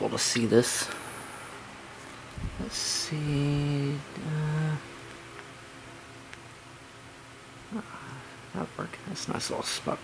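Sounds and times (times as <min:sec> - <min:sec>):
man saying uh: 0:02.6 - 0:04.9
man humming: 0:02.6 - 0:05.0, 0:07.7 - 0:08.3.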